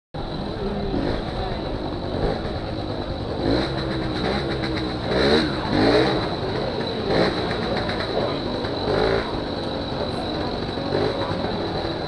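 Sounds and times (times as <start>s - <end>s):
moped engine running: 0.2s - 12.0s
voices of people: 0.2s - 12.0s.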